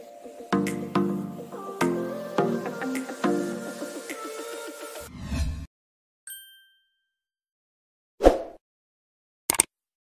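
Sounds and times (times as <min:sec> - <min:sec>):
bright bell-like ding: 0:06.3 - 0:07.2.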